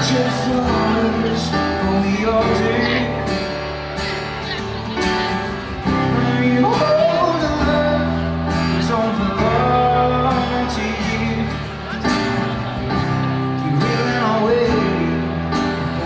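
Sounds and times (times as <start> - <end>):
band playing keyboard and guitar: 0.0 - 16.0.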